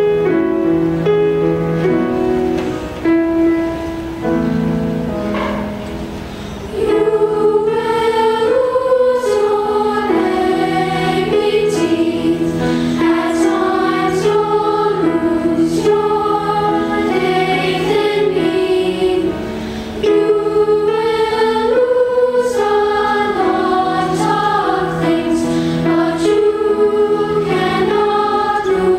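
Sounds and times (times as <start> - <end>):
instrumental accompaniment: 0.0 - 28.9
choir singing: 6.5 - 28.9.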